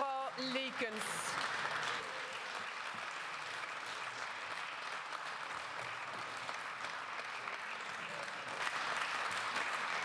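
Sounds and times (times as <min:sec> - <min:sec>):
many hands clapping: 0:00.0 - 0:10.0.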